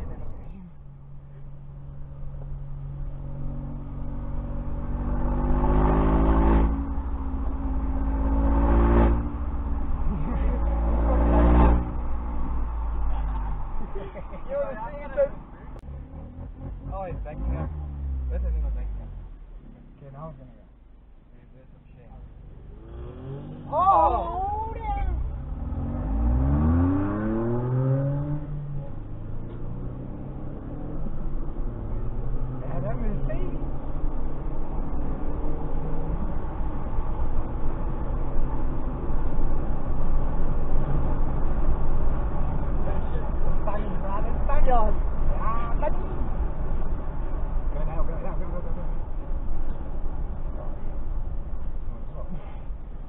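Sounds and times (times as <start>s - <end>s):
car engine accelerating: 0.0s - 53.0s
road and tyre noise: 0.0s - 53.0s.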